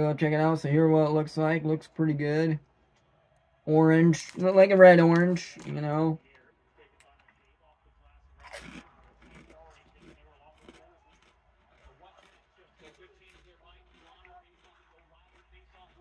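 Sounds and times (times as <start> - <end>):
chewing crunching: 8.4 - 16.0
potato chip crunching: 8.4 - 16.0.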